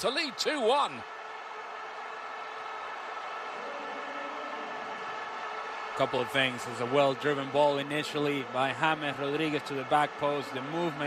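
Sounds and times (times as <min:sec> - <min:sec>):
crowd cheering roar: 0:00.0 - 0:11.0.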